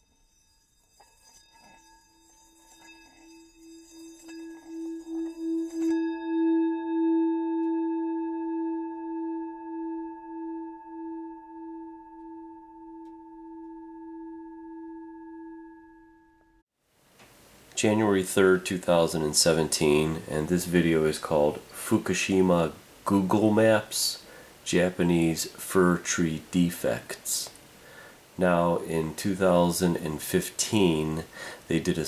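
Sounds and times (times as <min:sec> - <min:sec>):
sustained ringing tone: 0:00.0 - 0:16.6.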